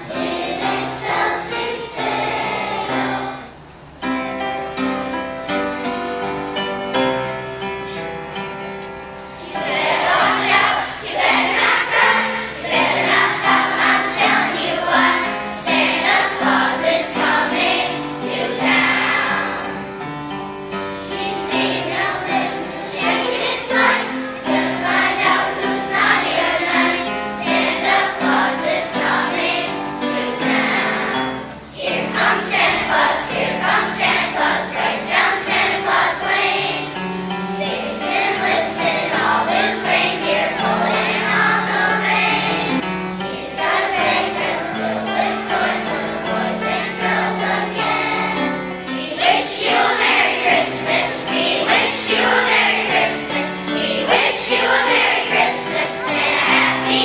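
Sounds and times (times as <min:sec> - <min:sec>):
children's choir singing: 0:00.0 - 0:57.0.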